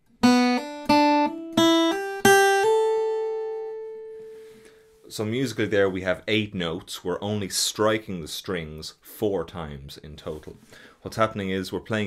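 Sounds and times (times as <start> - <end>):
acoustic guitar hammer-ons: 0.2 - 3.5.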